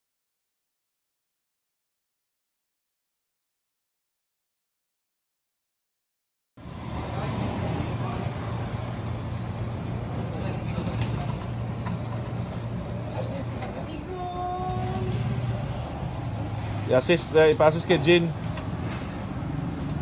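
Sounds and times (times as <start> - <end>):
street noise: 6.6 - 20.0
vehicle engine hum: 6.6 - 20.0.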